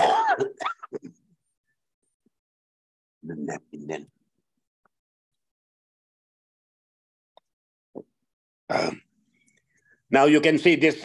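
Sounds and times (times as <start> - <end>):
man clearing his throat: 0.0 - 1.2, 8.7 - 9.1.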